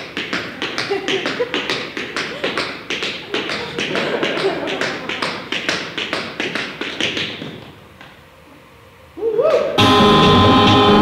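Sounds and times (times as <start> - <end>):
tap shoes on wooden floor: 0.0 - 8.2.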